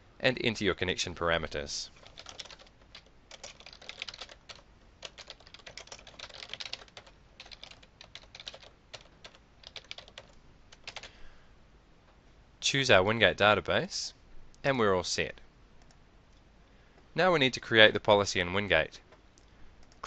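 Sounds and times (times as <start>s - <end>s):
keyboard typing: 2.0s - 11.1s.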